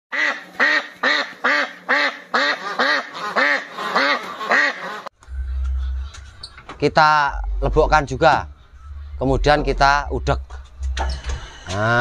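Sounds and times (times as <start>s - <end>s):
duck quacking: 0.1s - 10.6s
low rumble: 5.1s - 12.0s.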